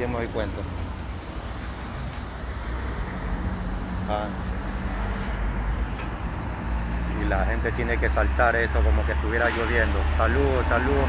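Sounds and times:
hiss of traffic: 0.0s - 11.0s.

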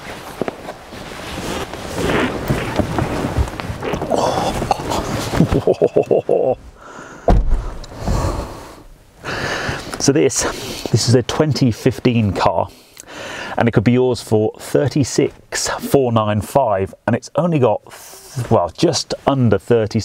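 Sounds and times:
rustling and shuffling in car seat: 0.0s - 5.8s
deep thud: 7.3s - 8.4s.

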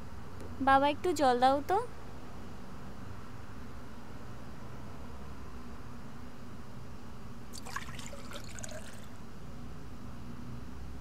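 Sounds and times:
water splashing: 7.6s - 9.1s.

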